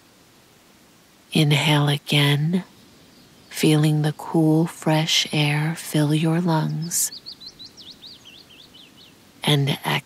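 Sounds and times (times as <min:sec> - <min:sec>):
faint background hiss: 0:00.0 - 0:10.0
small bird chirping: 0:06.6 - 0:09.2.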